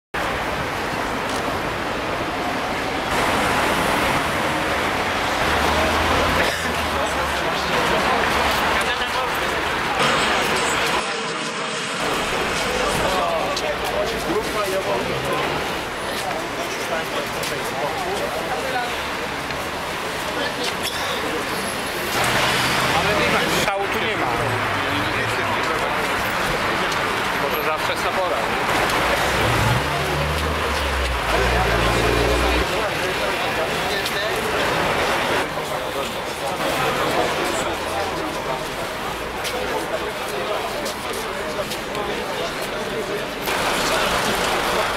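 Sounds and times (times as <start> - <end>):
crowd chatter: 0.2 - 44.9
traffic rumble and hiss: 0.2 - 44.9
vehicle engine humming: 28.6 - 32.9.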